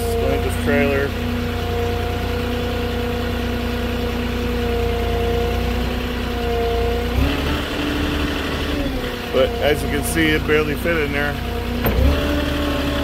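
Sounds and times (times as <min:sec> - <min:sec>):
forklift engine running: 0:00.0 - 0:13.0.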